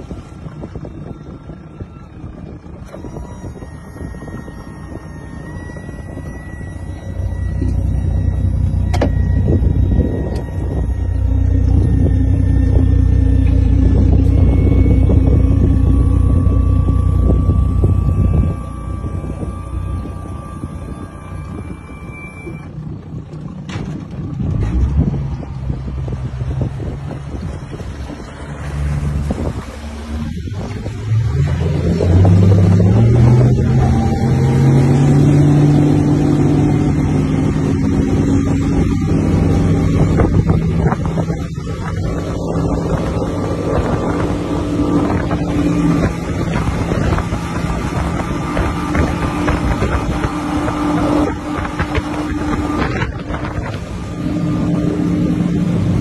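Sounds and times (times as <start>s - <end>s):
outboard motor running at speed: 0.0s - 56.0s.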